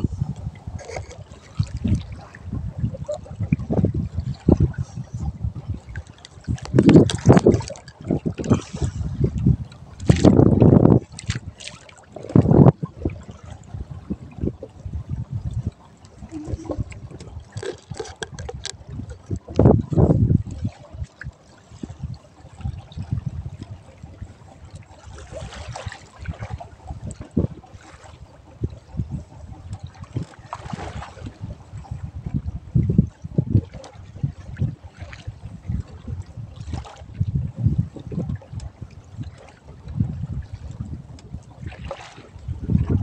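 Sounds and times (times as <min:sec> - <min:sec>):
low thumps against hull: 0:00.0 - 0:11.5
water slapping against boat hull: 0:00.0 - 0:43.0.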